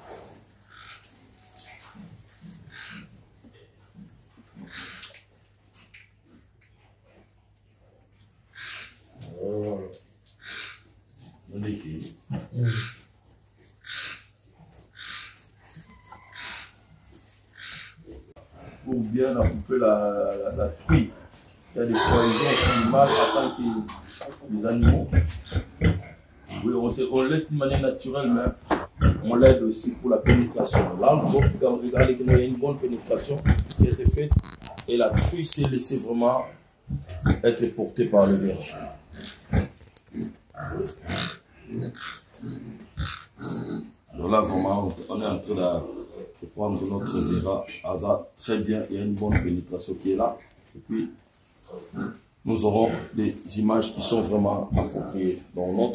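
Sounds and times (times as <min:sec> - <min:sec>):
pig grunting: 0:08.6 - 0:13.1, 0:17.6 - 0:44.8, 0:45.4 - 0:47.8, 0:49.1 - 0:49.7, 0:50.9 - 0:55.9.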